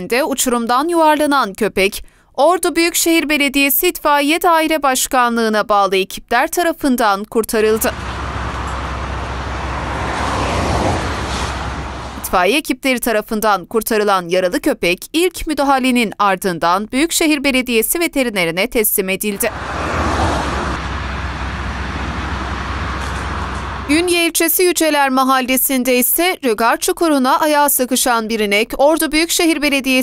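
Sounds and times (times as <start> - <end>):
road traffic rumble: 7.6 - 12.5, 19.3 - 24.4.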